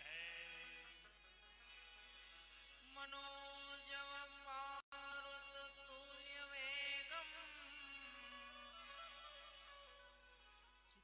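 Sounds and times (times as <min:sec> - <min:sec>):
harmonium and keyboard chords: 0:00.0 - 0:11.0.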